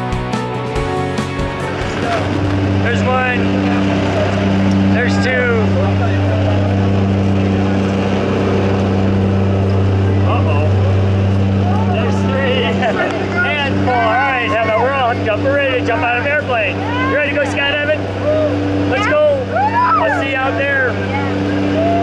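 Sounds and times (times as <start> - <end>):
airplane engine and propeller drone: 0.0 - 22.0
bursts of voices: 10.0 - 22.0.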